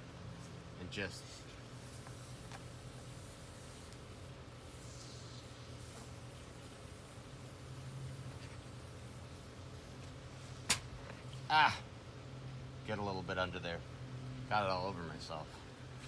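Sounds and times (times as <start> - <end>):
steady low hum: 0.0 - 16.0
expanding foam can hissing: 1.8 - 9.6.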